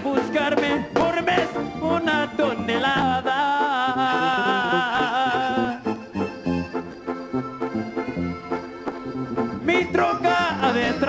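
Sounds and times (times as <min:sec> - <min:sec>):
bass line: 0:00.0 - 0:11.0
live band playing: 0:00.0 - 0:11.0.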